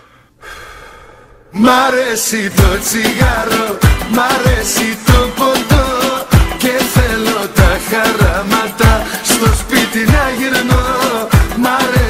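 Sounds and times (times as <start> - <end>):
man singing loudly: 1.5 - 12.0
music: 2.2 - 12.0.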